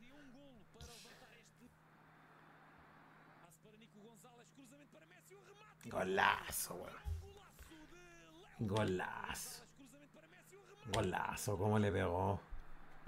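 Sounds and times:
faint football tv commentary: 0.0s - 13.0s.

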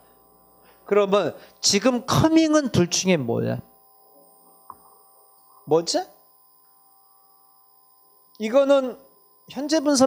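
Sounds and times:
faint electrical hum: 0.0s - 10.0s
man speaking: 0.9s - 3.7s, 5.7s - 6.2s, 8.4s - 10.0s.

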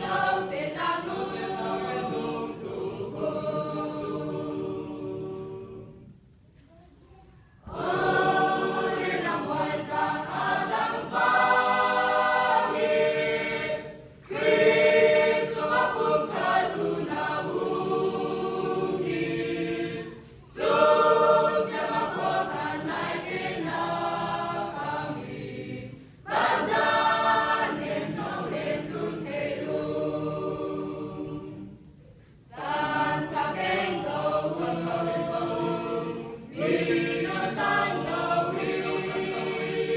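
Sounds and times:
choir singing a hymn: 0.0s - 6.3s, 7.6s - 39.9s.

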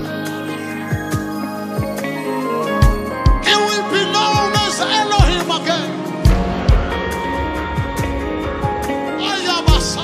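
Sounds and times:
gospel band playing: 0.0s - 10.0s
lead singer: 0.0s - 10.0s
heavy kick drum strikes: 6.3s - 9.0s.

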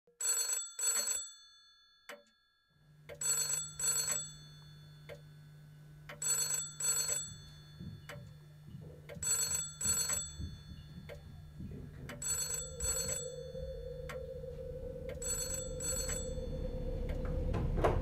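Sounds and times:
telephone ringing: 0.2s - 1.5s, 3.2s - 5.6s, 6.2s - 8.6s, 9.2s - 11.6s, 12.2s - 13.9s
steady low hum: 4.4s - 18.0s.

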